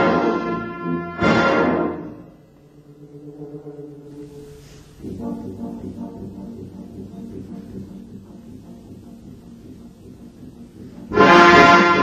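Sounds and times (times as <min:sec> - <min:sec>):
brass band playing: 0:00.0 - 0:02.4, 0:10.3 - 0:12.0.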